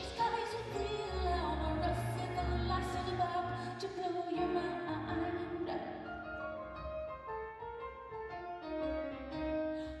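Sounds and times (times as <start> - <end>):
grand piano: 0.0 - 10.0.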